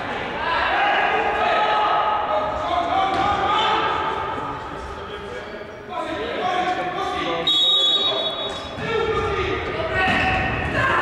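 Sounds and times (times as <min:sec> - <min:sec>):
players shouting in echoing hall: 0:00.0 - 0:11.0.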